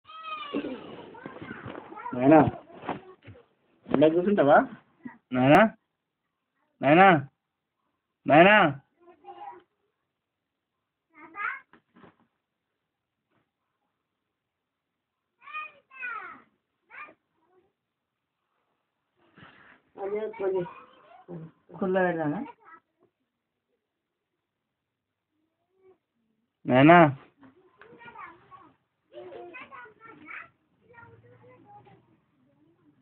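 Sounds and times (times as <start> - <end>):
high-pitched cries: 0.1 - 1.0.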